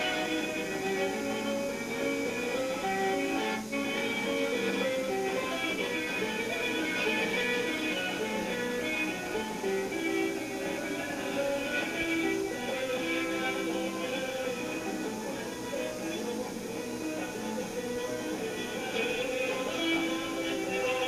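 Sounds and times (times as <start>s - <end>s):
person singing: 0.0s - 21.0s
strummed string instruments: 0.0s - 21.0s.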